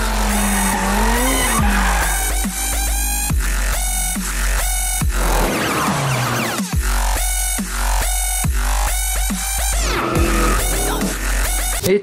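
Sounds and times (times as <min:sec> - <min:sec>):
tyres squealing: 0:00.0 - 0:03.4
car engine revving: 0:00.0 - 0:11.8
electronic music with heavy bass: 0:00.0 - 0:12.0.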